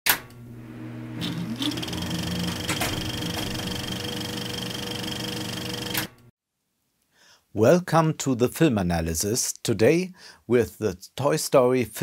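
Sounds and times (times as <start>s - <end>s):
rapid mechanical clatter: 1.2s - 6.1s.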